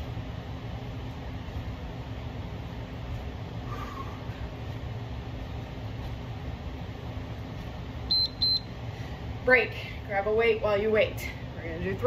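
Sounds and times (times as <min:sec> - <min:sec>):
steady low hum: 0:00.0 - 0:12.0
short high electronic beeps: 0:08.1 - 0:08.7.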